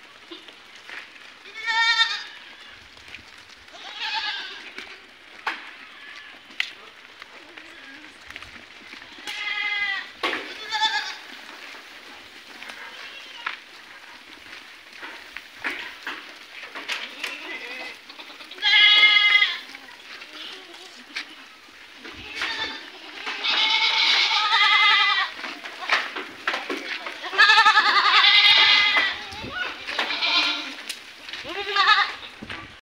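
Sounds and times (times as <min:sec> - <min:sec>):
young goats bleating: 0:00.1 - 0:03.0, 0:03.7 - 0:11.5, 0:12.4 - 0:32.5.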